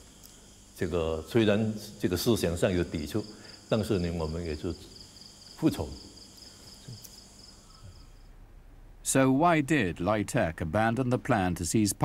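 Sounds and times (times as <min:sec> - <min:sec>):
crickets chirping: 0:00.0 - 0:08.4
man speaking: 0:00.8 - 0:04.9, 0:05.6 - 0:06.1, 0:09.0 - 0:12.0.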